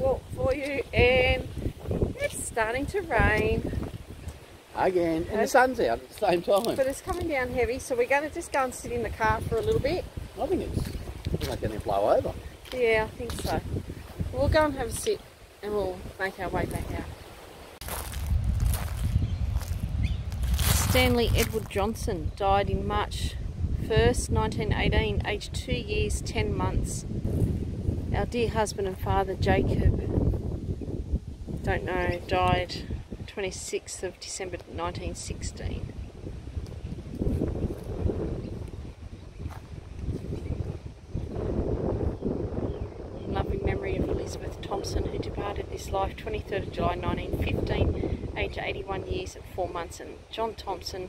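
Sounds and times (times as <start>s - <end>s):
wind buffeting microphone: 0.0s - 51.0s
soft footsteps on grass: 16.6s - 21.8s, 27.2s - 28.1s, 36.6s - 40.7s.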